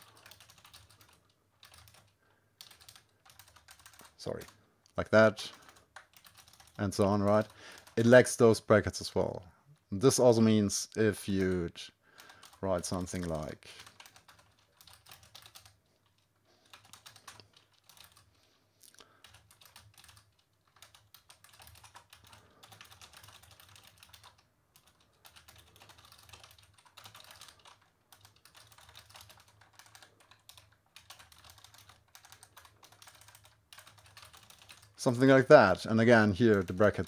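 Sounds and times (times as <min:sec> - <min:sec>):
faint typing on a keyboard: 0:00.0 - 0:09.9, 0:10.9 - 0:37.0.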